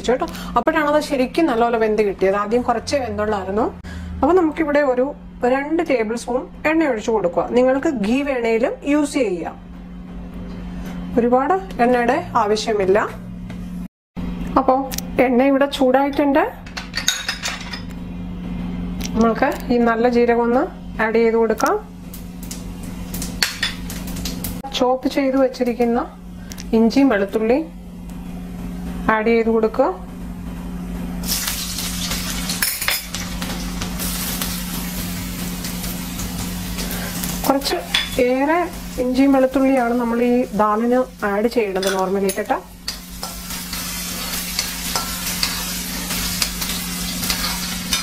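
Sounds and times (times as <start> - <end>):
seeds sizzling in hot oil: 22.0 - 24.6, 31.2 - 48.0
spoon scraping a pan: 41.8 - 48.0.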